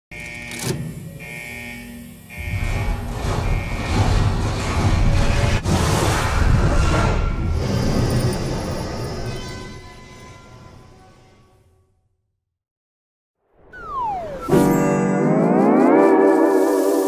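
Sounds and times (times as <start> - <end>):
cinematic intro music: 13.6 - 17.0.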